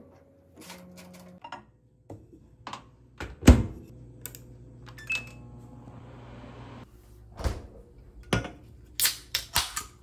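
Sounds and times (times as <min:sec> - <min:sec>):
microwave running hum: 0:00.0 - 0:06.8.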